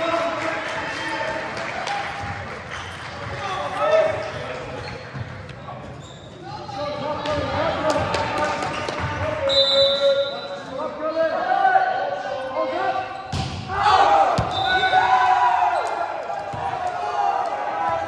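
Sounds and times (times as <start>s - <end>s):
voices echoing in a gymnasium: 0.0s - 18.0s.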